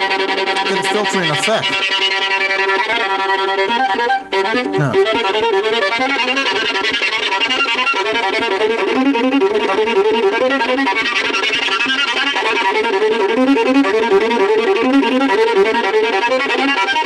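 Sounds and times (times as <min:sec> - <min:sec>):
violin bowed continuously: 0:00.0 - 0:17.0.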